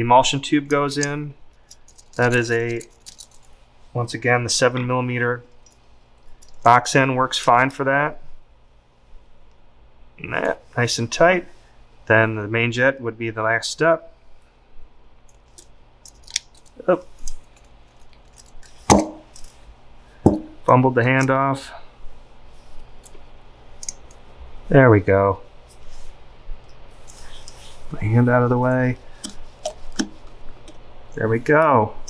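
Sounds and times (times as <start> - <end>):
metal parts clicking and scraping: 1.0 - 3.6, 5.5 - 6.7, 15.3 - 19.6
sharp knock: 18.9 - 19.3, 20.3 - 20.6.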